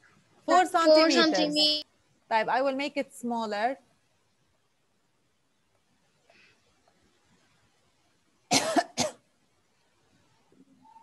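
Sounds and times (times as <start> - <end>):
person coughing: 8.5 - 9.2.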